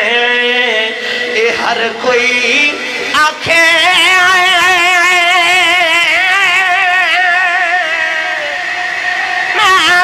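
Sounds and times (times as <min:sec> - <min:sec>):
man singing high note with vibrato: 0:00.0 - 0:10.0.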